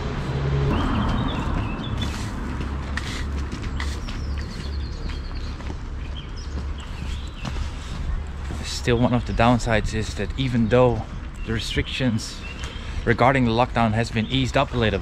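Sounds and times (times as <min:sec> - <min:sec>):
footsteps: 0:00.0 - 0:10.3
low traffic rumble: 0:00.0 - 0:15.0.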